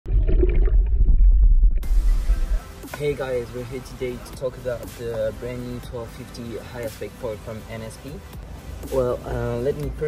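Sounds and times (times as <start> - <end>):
underwater rumble and bubbling: 0.0 - 2.6.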